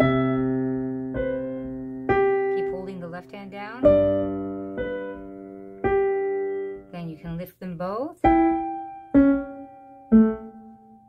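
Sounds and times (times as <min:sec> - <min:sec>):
digital piano notes: 0:00.0 - 0:11.0.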